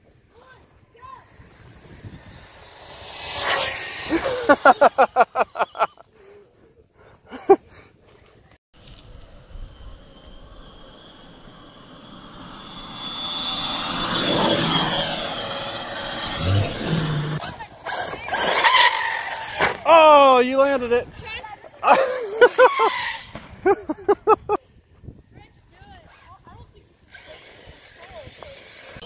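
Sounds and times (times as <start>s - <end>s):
electric rc cars whining past: 0.4s - 5.9s, 8.8s - 24.6s, 26.2s - 29.0s.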